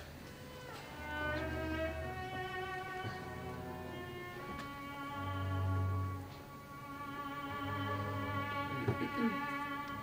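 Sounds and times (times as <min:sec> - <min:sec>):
bowed strings sustained notes: 0:00.4 - 0:10.0.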